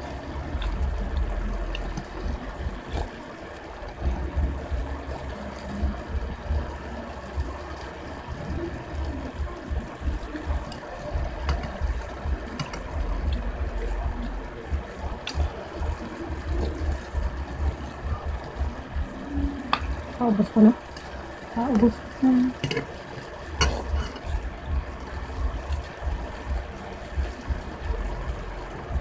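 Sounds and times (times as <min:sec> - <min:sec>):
low rumble: 0:00.3 - 0:03.0.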